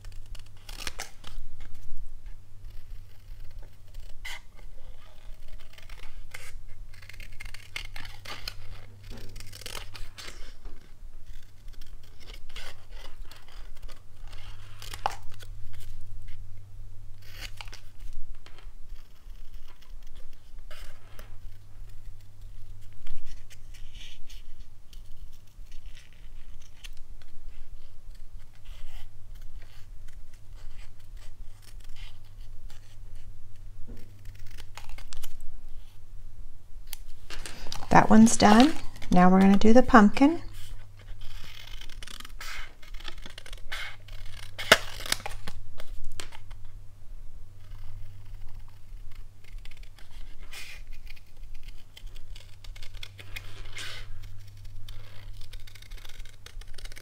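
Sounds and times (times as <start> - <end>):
scissors snipping card: 37.7 - 40.4.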